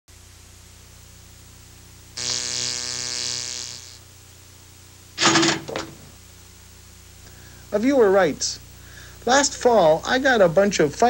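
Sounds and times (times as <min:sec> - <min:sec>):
mains hum: 0:00.1 - 0:11.0
buzzy pitched tone: 0:02.2 - 0:04.1.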